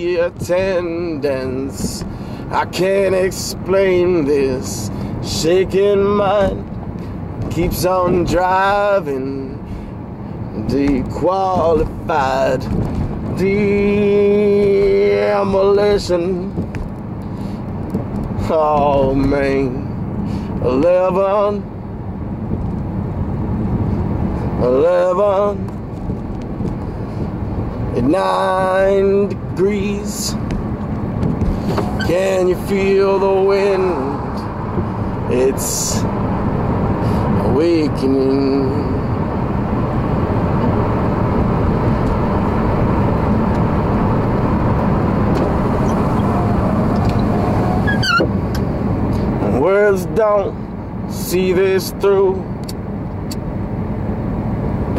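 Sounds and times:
car road and engine noise: 0.0 - 54.9.

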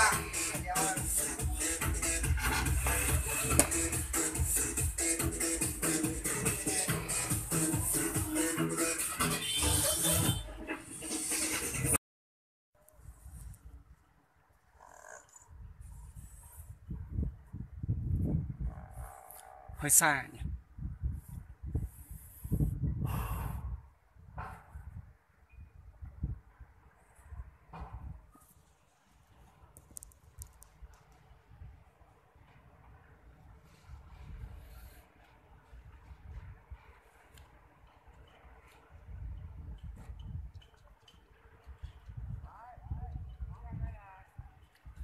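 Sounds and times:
wind buffeting microphone: 15.5 - 28.3, 30.0 - 45.0.

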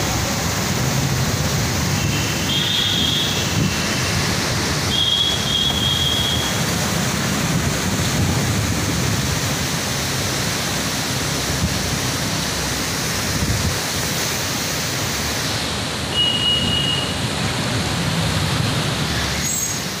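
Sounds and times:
fast-flowing floodwater: 0.0 - 20.0.

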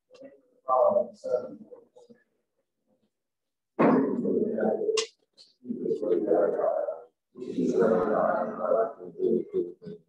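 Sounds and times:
indistinct low voice: 3.8 - 10.0.

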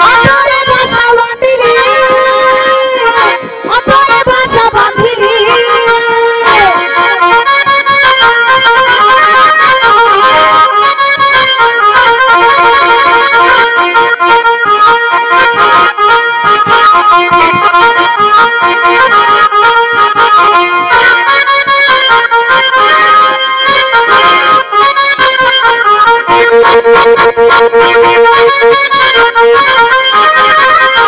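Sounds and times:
loud instrumental dance music: 5.3 - 9.2.

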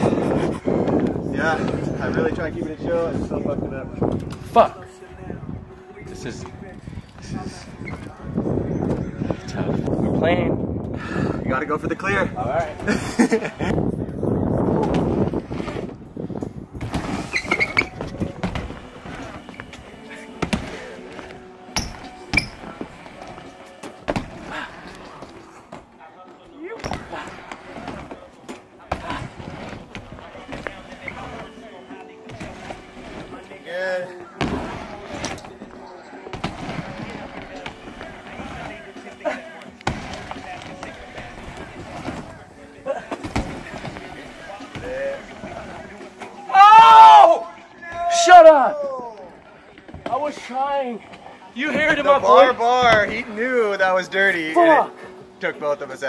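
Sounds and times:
bike tyres rolling on ramp: 14.6 - 25.8, 26.8 - 46.3.

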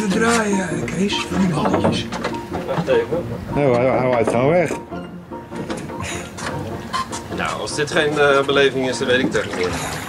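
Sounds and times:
oar knocking against wooden boat: 0.9 - 9.7
oar splashing in water: 6.4 - 10.0.

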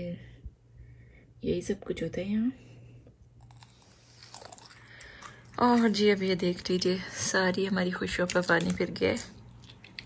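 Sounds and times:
potato chips being chewed: 3.3 - 6.8, 8.0 - 10.0.

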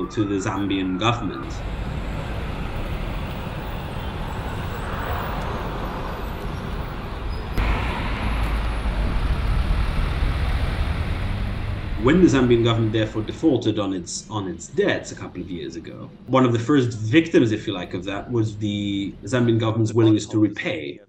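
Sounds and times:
road traffic hum: 0.0 - 13.5
deep traffic rumble: 0.0 - 14.1.

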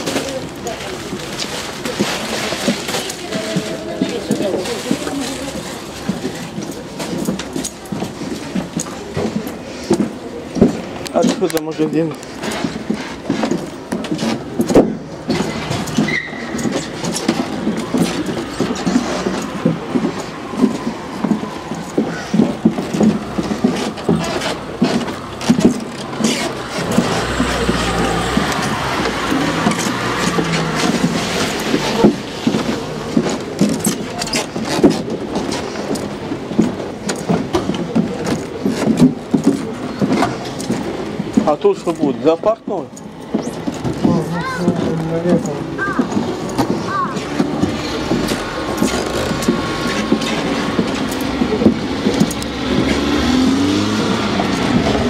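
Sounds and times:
cars driving by: 0.0 - 55.0.

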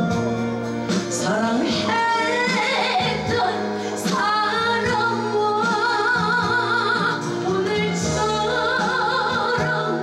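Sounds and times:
musical accompaniment: 0.0 - 10.0
woman singing into microphone: 0.9 - 10.0.

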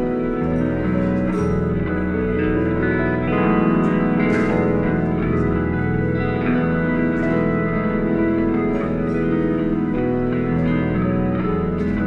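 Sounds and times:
bass guitar: 0.0 - 12.0
effects-laden electric guitar: 0.0 - 12.0.

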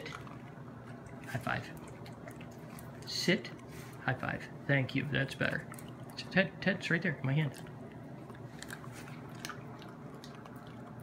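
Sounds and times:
dog crunching peanut: 0.0 - 3.7, 5.2 - 6.4, 7.1 - 11.0.

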